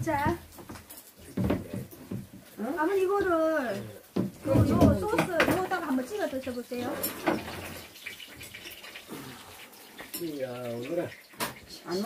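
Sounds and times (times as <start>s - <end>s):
meat sizzling on a griddle: 0.0s - 12.0s.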